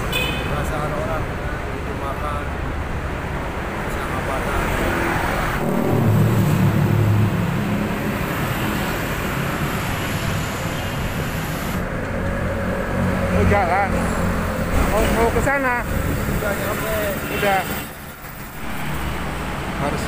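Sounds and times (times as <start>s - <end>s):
road traffic passing: 0.0s - 20.0s.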